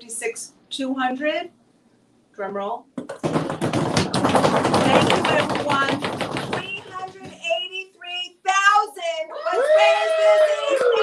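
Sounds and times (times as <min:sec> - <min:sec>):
fast drum roll: 0:03.1 - 0:07.5
people shouting and whooping: 0:09.3 - 0:11.0.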